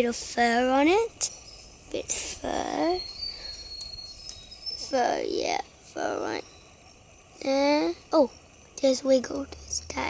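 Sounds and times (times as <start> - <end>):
high thin insect call: 0.0 - 10.0.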